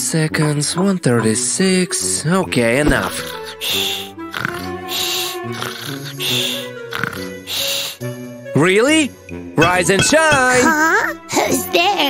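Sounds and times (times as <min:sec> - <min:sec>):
background music: 0:00.0 - 0:12.0
cartoon snoring: 0:03.0 - 0:08.0.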